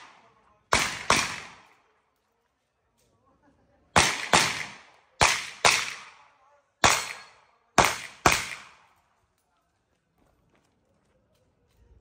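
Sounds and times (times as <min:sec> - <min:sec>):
pistol shots echoing: 0:00.0 - 0:01.9, 0:04.0 - 0:09.0.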